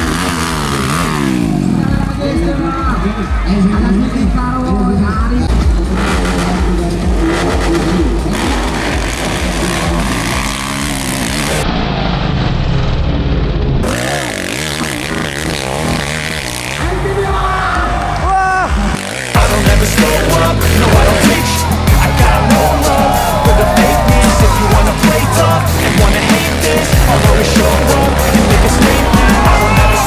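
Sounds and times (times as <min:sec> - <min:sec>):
spectators shouting: 0:00.0 - 0:04.7, 0:15.7 - 0:30.0
motorcycle engines revving: 0:00.0 - 0:30.0.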